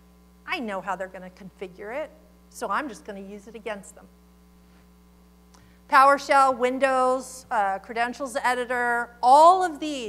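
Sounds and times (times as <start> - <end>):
electrical mains hum: 0.0 - 10.0
woman speaking: 0.5 - 4.1, 5.9 - 10.0.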